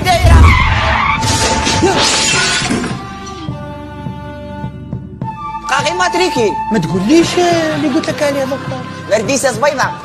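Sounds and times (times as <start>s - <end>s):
shattering crash: 0.2s - 3.0s.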